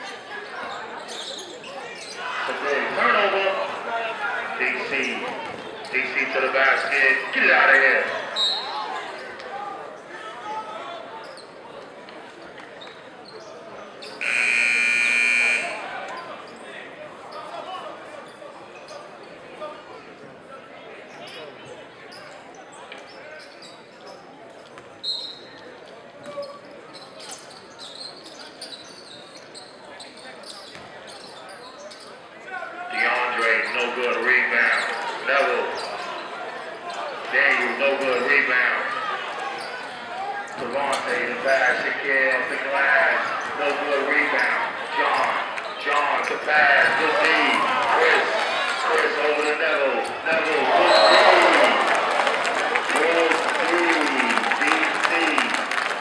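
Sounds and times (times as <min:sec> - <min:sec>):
crowd chatter: 0:00.0 - 0:56.0
scoreboard buzzer: 0:14.2 - 0:15.9.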